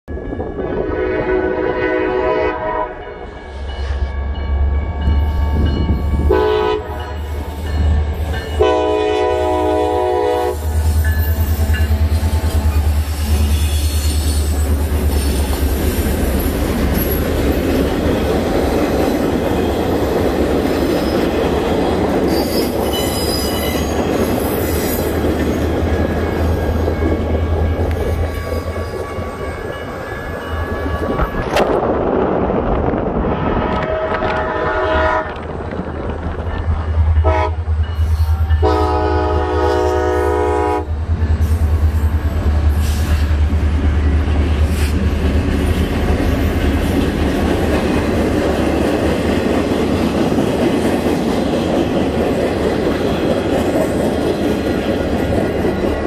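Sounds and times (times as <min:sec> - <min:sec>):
locomotive engines rumbling: 0:00.1 - 0:56.0
train wheels on rails: 0:00.1 - 0:56.0
locomotive horn blasts: 0:00.7 - 0:03.3, 0:06.2 - 0:07.3, 0:08.5 - 0:10.8, 0:33.7 - 0:35.4, 0:37.2 - 0:37.7, 0:38.4 - 0:41.0.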